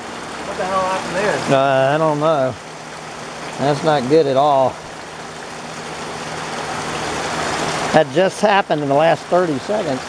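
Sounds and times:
heavy rain pouring: 0.0s - 10.0s.

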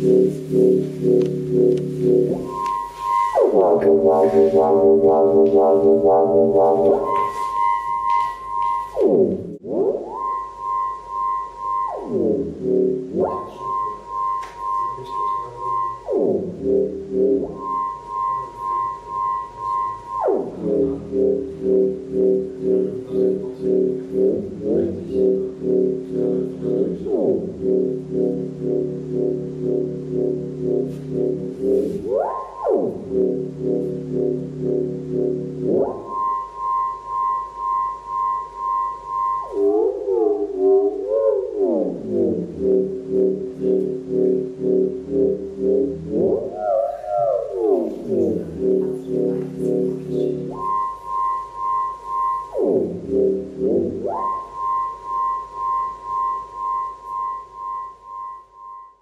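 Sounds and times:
pulsing synthesizer tones: 0.0s - 59.0s
synthesizer pitch sweeps: 0.0s - 59.0s.

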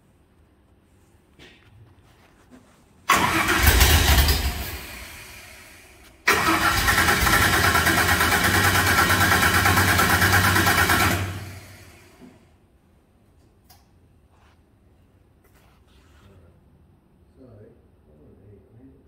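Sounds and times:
truck engine starting and running: 3.1s - 12.3s.

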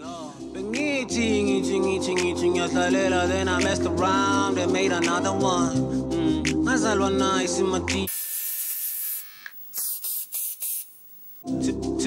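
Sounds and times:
aerosol spray hissing: 8.1s - 11.4s.

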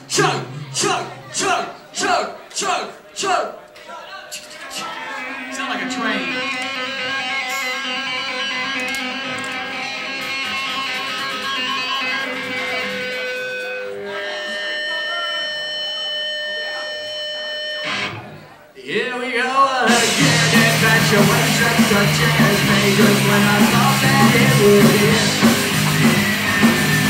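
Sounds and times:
electric guitar chords ringing: 5.3s - 18.4s, 19.9s - 27.0s.

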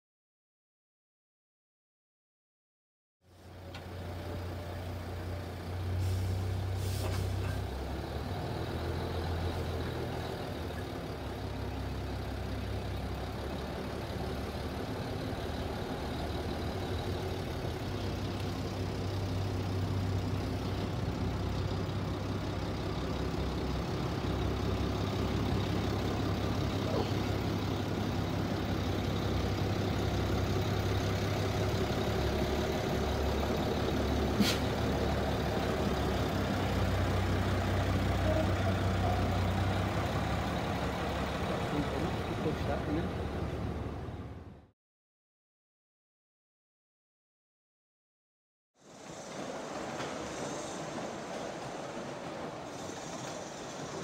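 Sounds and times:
diesel locomotive engine running: 3.2s - 44.7s, 48.8s - 54.0s.

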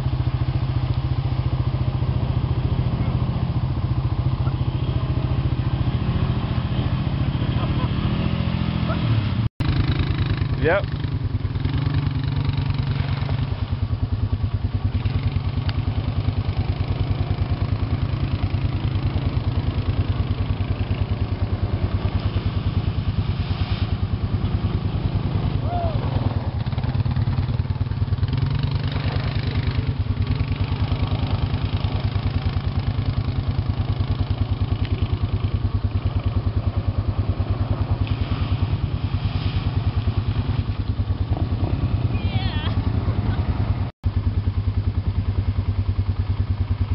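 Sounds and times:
atv engine running: 0.0s - 46.9s.

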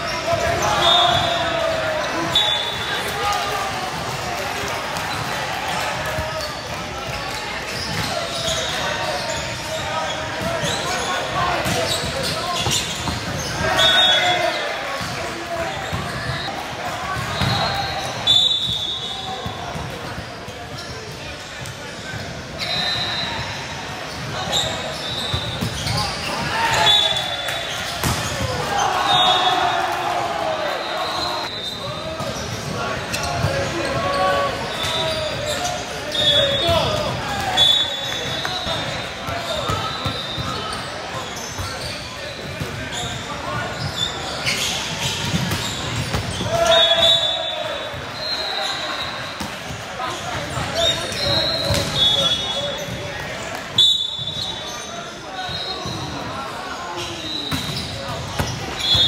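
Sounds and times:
sneakers squeaking on hardwood: 7.6s - 14.4s, 22.0s - 29.4s, 31.0s - 53.0s.

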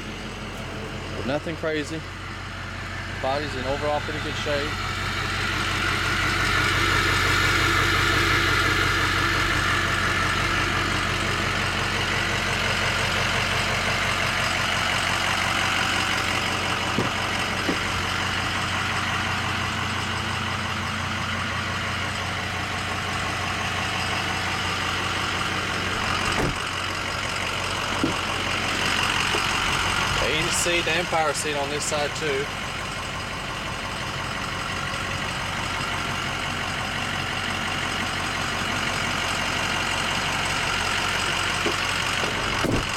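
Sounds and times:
diesel engine idling: 0.0s - 42.9s.

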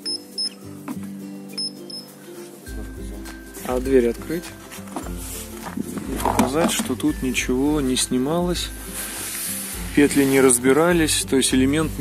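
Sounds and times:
short high beeps: 0.0s - 0.6s, 1.6s - 2.1s
background music: 0.0s - 12.0s.

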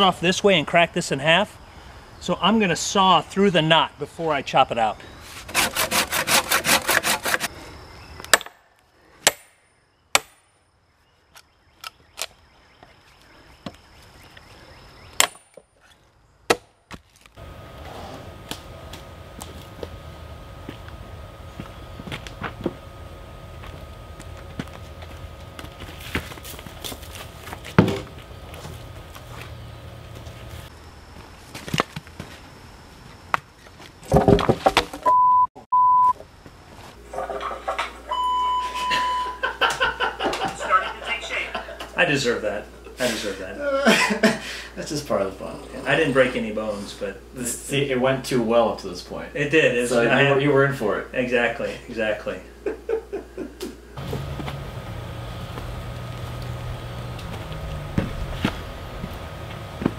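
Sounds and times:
hand saw cutting wood: 5.4s - 7.5s
axe chopping wood: 8.3s - 8.6s, 9.2s - 10.4s, 15.2s - 15.6s, 16.5s - 17.0s
steady one-tone beep: 35.1s - 36.2s, 38.1s - 39.4s
low background noise: 36.1s - 59.8s.

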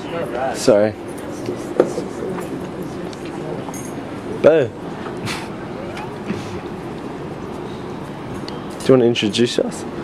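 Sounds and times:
faint voices: 0.0s - 10.0s
road traffic hum: 0.0s - 10.0s.

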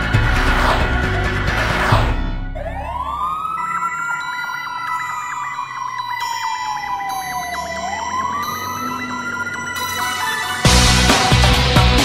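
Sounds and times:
fire engine siren wailing: 2.4s - 10.7s
fast repeating siren pulse: 2.5s - 10.7s.

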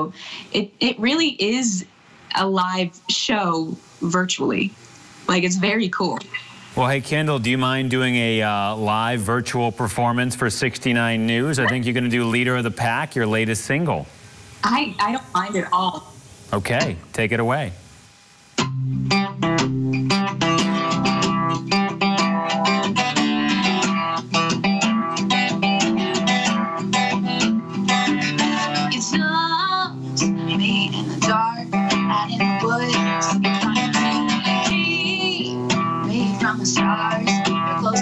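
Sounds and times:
acoustic guitar strumming: 6.8s - 13.4s, 18.6s - 38.0s
woman singing: 28.7s - 38.0s.

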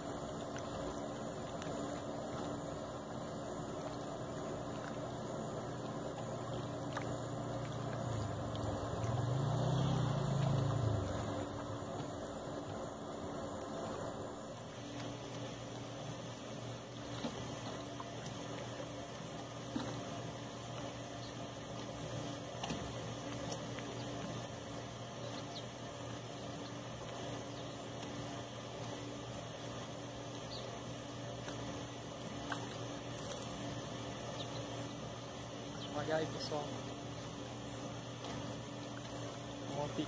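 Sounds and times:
faint water noise: 0.0s - 40.0s
steady low hum: 0.0s - 40.0s.

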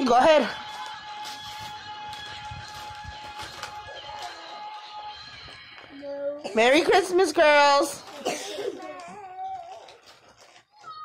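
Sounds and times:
faint background music: 0.0s - 11.0s
wrapping paper crinkling and tearing: 0.6s - 5.6s, 8.0s - 11.0s.

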